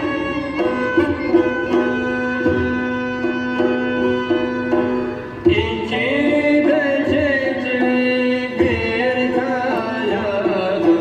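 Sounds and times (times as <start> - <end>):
drum strokes: 0.0 - 11.0
folk melody instruments: 0.0 - 11.0.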